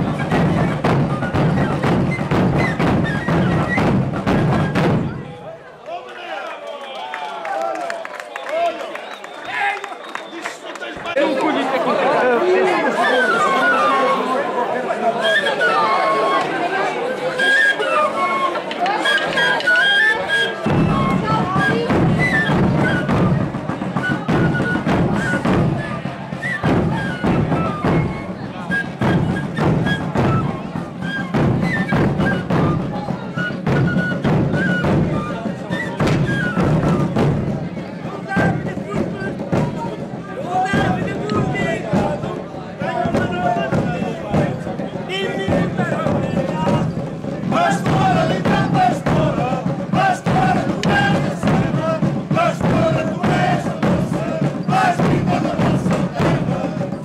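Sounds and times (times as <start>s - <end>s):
small flute melody: 0.0s - 5.2s, 12.8s - 42.2s
bass drums beating: 0.0s - 5.3s, 36.0s - 57.0s
crowd chatter: 0.0s - 57.0s.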